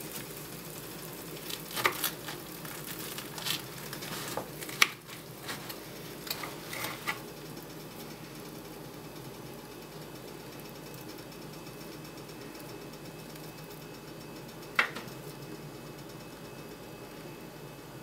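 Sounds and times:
hot oil sizzling: 0.0 - 17.6.

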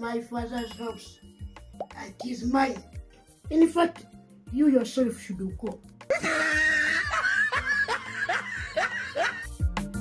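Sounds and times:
background music: 0.0 - 10.0
man laughing: 6.1 - 9.6.

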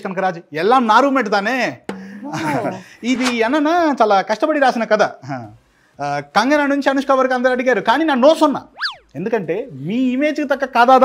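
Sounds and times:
man talking: 0.0 - 11.0
cartoon boing sound effect: 8.8 - 9.1.

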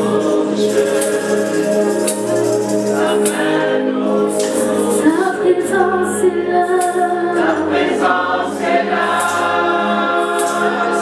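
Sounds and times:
group singing worship song: 0.0 - 11.0
keyboard accompaniment: 0.0 - 11.0.

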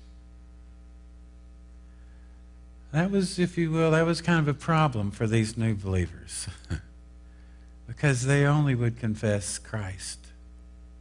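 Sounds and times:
electrical hum: 0.0 - 11.0
man's voice: 2.9 - 6.8, 7.9 - 10.3.

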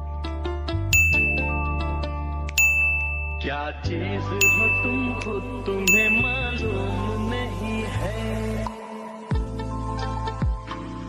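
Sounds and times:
background music with low bass: 0.0 - 11.0
bright pop-up ding: 0.9 - 6.8.

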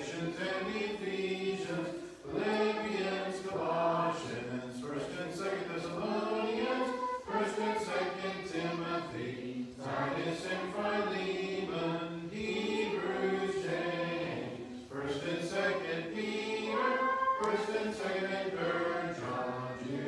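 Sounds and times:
children chanting in unison: 0.0 - 20.0.

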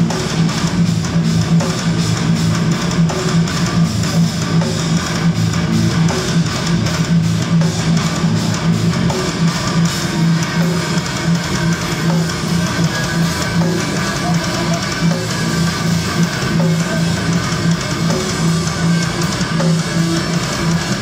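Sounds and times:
drums: 0.0 - 21.0
heavy electric guitar riff: 0.0 - 21.0.

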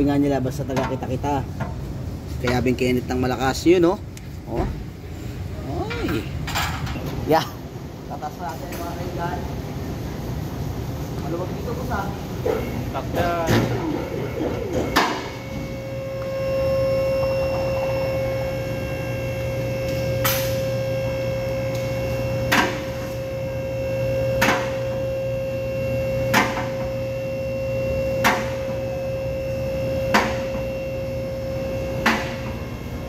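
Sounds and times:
workshop machinery humming: 0.0 - 33.0.

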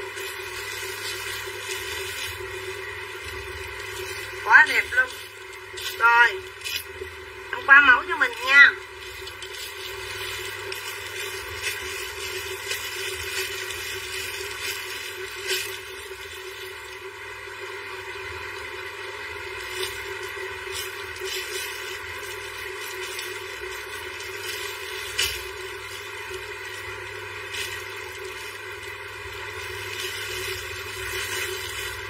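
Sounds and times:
plastic wrapping crinkling: 0.0 - 7.2, 8.2 - 17.1, 19.3 - 32.0
steady background hum: 0.0 - 32.0.

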